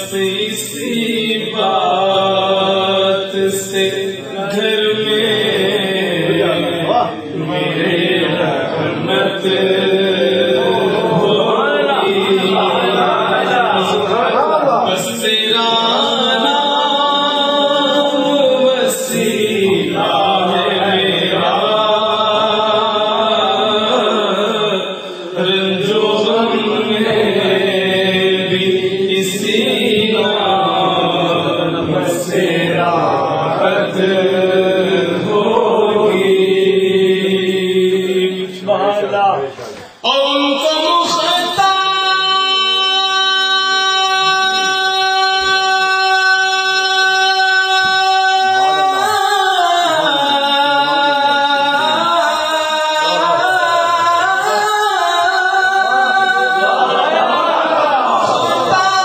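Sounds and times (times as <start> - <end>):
voices chanting melodically: 0.0 - 59.0.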